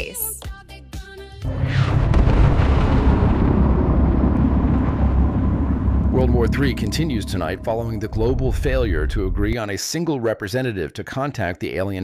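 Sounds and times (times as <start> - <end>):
deep explosion rumble: 1.5 - 9.7.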